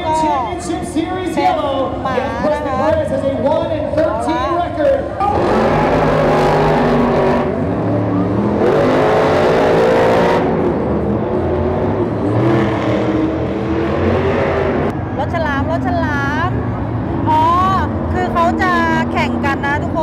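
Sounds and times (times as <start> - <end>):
monster truck engines revving: 0.0 - 20.0.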